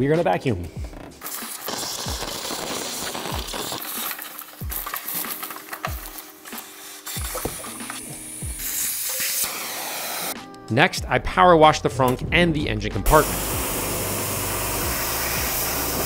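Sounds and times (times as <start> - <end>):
thumping background music: 0.0 - 16.0
vacuum cleaner suction: 1.2 - 10.4, 13.1 - 16.0.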